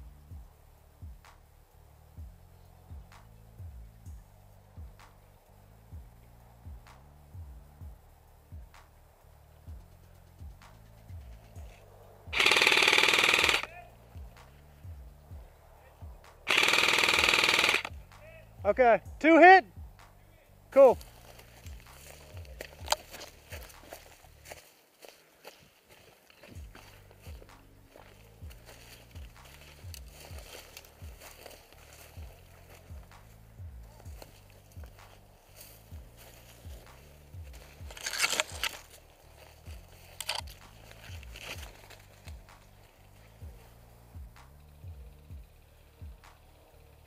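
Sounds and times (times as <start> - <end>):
footsteps crunching through dry grass: 3.6 - 19.1, 19.8 - 46.6
loud noisy bursts: 12.3 - 13.7, 16.5 - 18.0.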